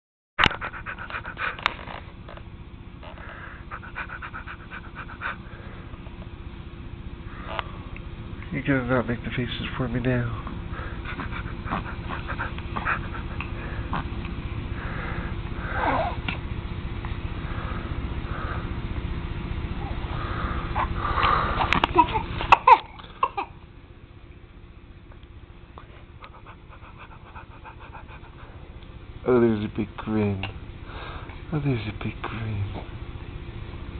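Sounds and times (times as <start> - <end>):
quick panting breaths: 0.4 - 2.0, 3.0 - 6.2, 10.4 - 16.3, 17.4 - 19.0, 19.8 - 22.7, 25.8 - 28.8.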